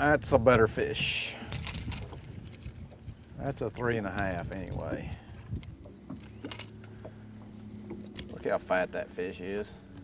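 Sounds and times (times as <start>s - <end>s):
low steady hum: 1.1s - 10.0s.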